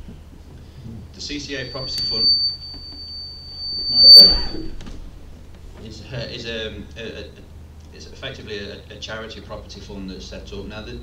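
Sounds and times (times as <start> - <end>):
high-pitched feedback whistle: 1.6 - 5.1.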